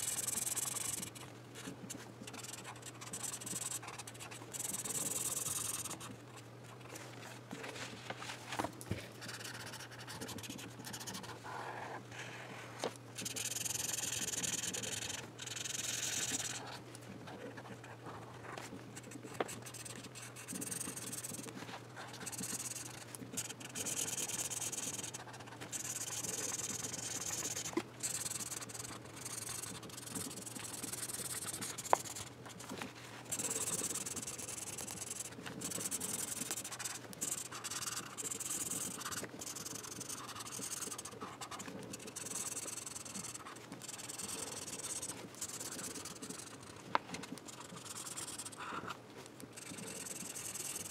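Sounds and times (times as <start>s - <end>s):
pen tip scratching on paper: 0.0s - 6.4s, 9.2s - 12.3s, 13.2s - 50.9s.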